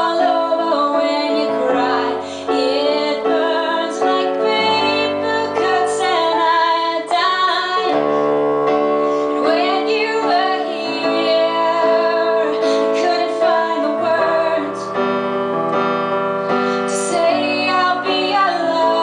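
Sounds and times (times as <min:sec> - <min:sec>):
woman singing: 0:00.0 - 0:08.2, 0:09.2 - 0:15.0, 0:16.8 - 0:19.0
piano chords: 0:00.0 - 0:19.0.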